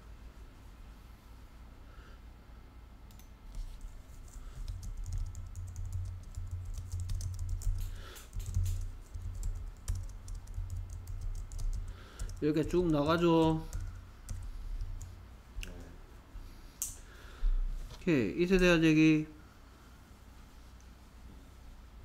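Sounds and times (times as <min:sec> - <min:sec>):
typing on computer keyboard: 0:03.1 - 0:15.2.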